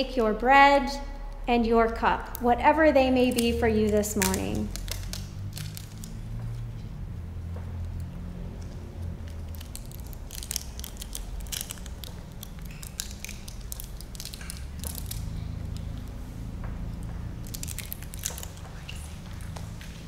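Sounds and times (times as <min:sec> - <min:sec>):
low steady hum: 0:00.0 - 0:20.0
bread crackling clicks: 0:03.3 - 0:06.2, 0:07.9 - 0:16.2, 0:16.9 - 0:19.9.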